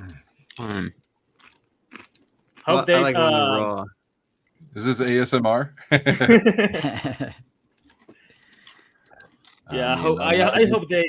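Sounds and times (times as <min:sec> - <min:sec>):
pepper crunching: 0:00.5 - 0:02.9.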